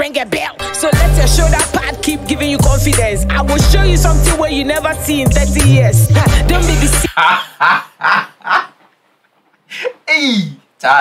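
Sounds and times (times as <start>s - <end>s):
man laughing: 5.7s - 8.8s.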